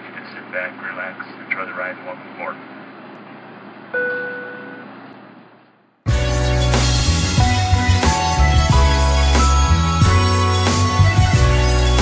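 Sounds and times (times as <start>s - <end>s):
cabin chime ding: 4.0s - 4.8s.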